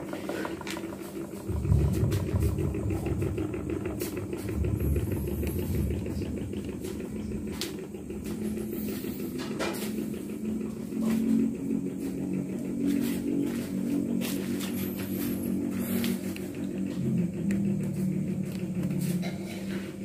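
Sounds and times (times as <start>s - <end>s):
air rumbling on microphone: 0.0s - 20.0s
fan motor hum: 0.0s - 20.0s.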